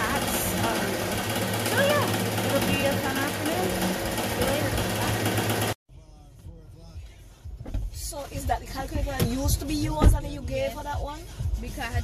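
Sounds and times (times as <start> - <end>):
embroidery machine stitching: 0.0 - 5.8.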